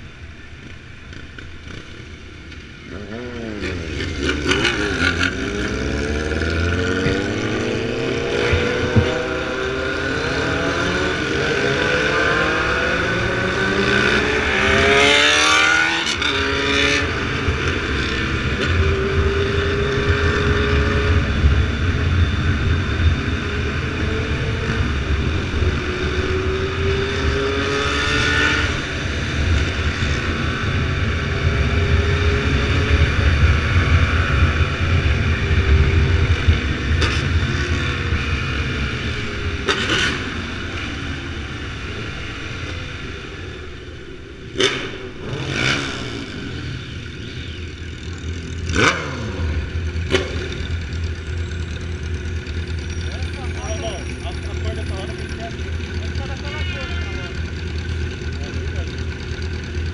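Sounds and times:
motorcycle engines: 0.0 - 59.9
high-pitched engine rev: 2.9 - 43.6, 44.5 - 59.9.

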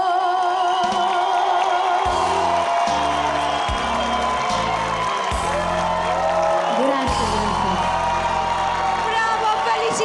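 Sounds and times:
audience cheering and whooping: 0.4 - 10.0.

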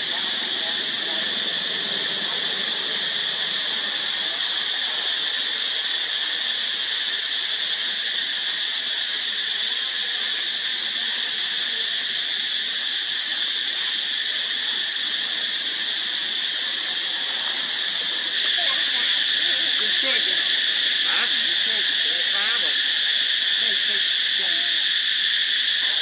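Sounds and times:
insects droning: 0.0 - 26.0.

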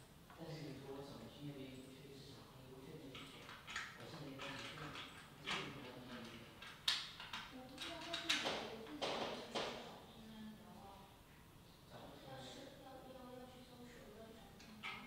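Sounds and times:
plastic parts clicking and rattling: 3.1 - 8.6.

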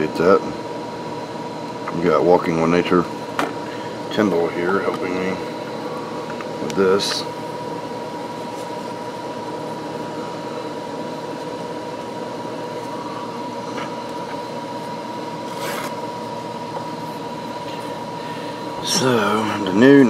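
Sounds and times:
steady mechanical hum: 0.0 - 20.0.

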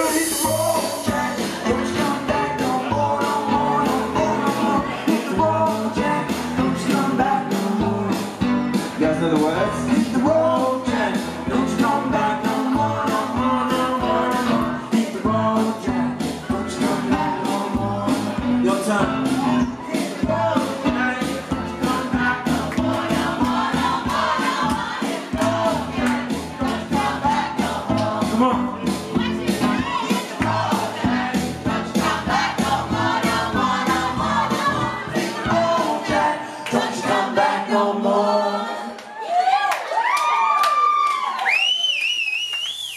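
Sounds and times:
steady drum beat: 0.0 - 36.3
bass line: 0.0 - 37.5
voices whooping and cheering: 39.0 - 42.9
high wavering whistle: 41.4 - 42.9.

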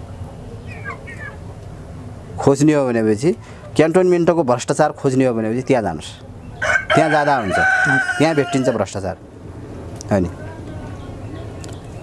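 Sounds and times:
rooster crowing: 6.6 - 9.0.

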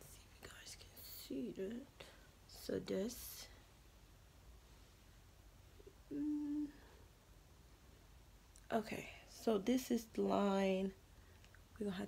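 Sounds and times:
woman whispering: 0.0 - 3.6, 6.1 - 6.9, 8.7 - 11.0.

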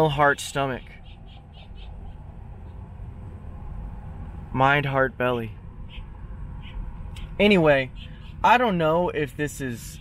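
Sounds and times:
low outdoor rumble: 0.0 - 10.0
small animal chirping: 5.8 - 8.5.

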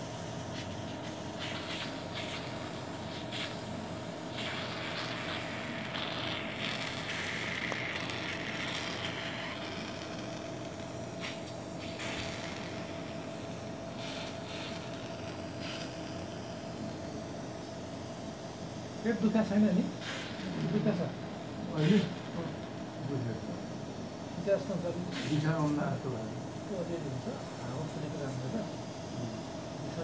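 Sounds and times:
equipment hum with whine: 0.0 - 30.0
hissing bursts: 1.3 - 16.6, 20.0 - 20.9, 21.7 - 22.5.

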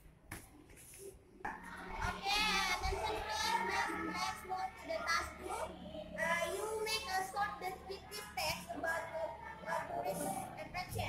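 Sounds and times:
high young voices singing: 1.6 - 11.0.

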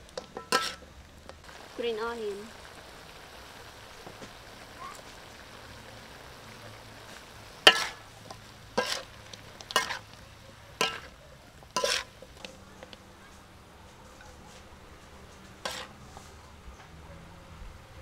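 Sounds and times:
spatula scraping and knocking wok: 0.0 - 1.4, 7.0 - 16.4
food sizzling in a wok: 0.0 - 16.6.

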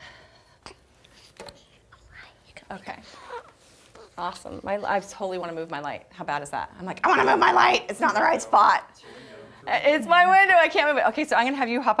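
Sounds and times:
person whispering: 1.9 - 2.9.

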